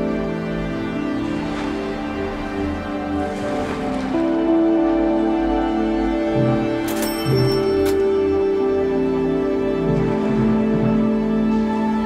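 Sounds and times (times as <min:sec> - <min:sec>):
music with slow sustained notes: 0:00.0 - 0:12.0.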